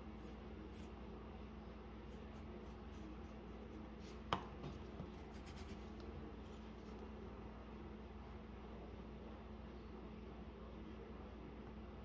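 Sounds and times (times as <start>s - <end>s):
pencil scratching on paper: 5.2s - 5.9s.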